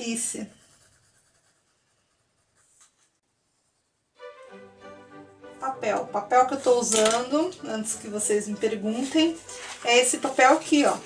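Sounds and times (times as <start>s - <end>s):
pencil shading on paper: 0.0s - 4.2s.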